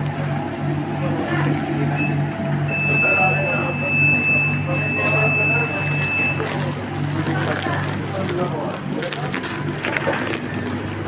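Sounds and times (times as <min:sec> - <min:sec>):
pulsing kitchen machinery hum: 0:00.0 - 0:11.0
high electronic beep: 0:02.0 - 0:06.4.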